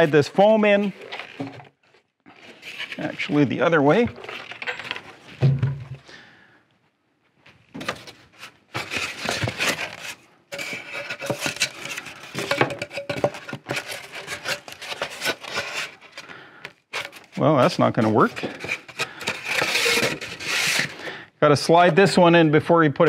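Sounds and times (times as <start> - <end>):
wooden frame thump: 5.4 - 6.0
foam scraping against wooden frame: 17.7 - 21.0.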